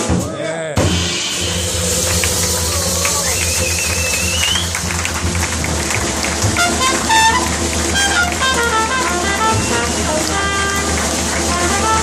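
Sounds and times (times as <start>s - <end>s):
drums with cymbals: 0.0s - 4.9s
double bass: 0.0s - 12.0s
trumpet: 0.8s - 12.0s.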